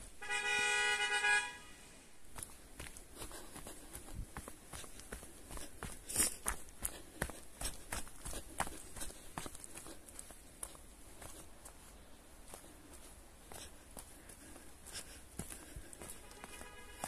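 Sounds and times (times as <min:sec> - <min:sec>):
footsteps on dry leaves: 0:02.2 - 0:17.0.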